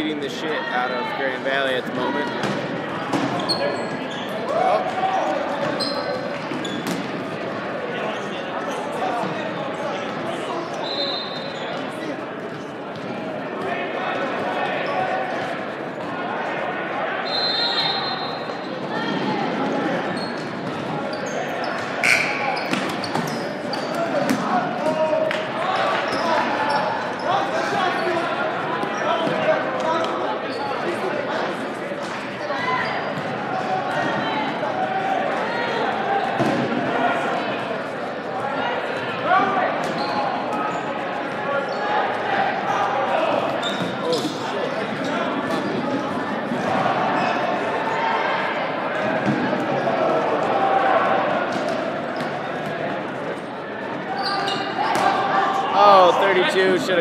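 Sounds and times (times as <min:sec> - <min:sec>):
shouting and chatter in gym: 0:00.0 - 0:57.0.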